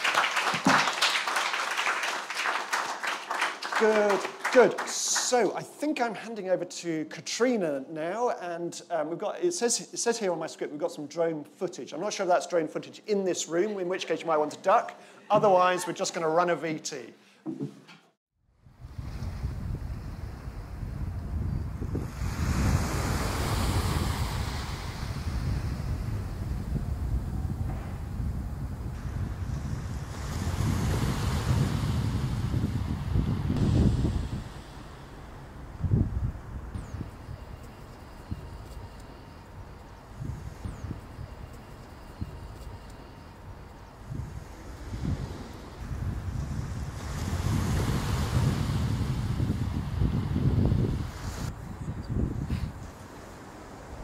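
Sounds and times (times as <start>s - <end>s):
wind buffeting microphone: 18.6s - 54.0s
small waves washing on sand: 21.8s - 27.2s, 29.0s - 35.7s, 44.2s - 51.5s.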